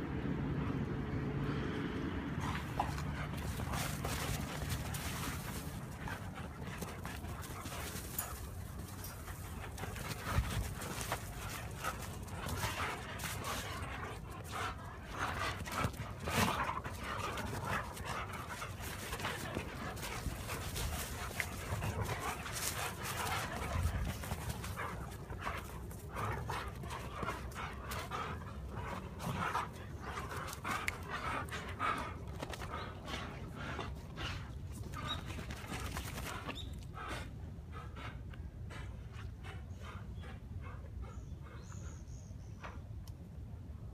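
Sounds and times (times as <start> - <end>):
dogs panting: 1.6 - 43.0.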